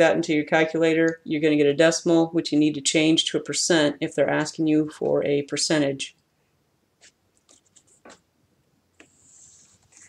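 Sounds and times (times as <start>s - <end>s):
whiteboard eraser scraping: 7.0s - 8.2s, 9.0s - 10.0s.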